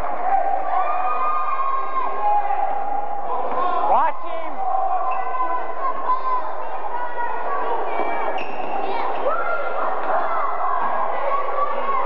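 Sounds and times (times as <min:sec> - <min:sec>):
crowd of indistinct voices: 0:00.0 - 0:12.0
sneaker squeaks: 0:08.0 - 0:08.9.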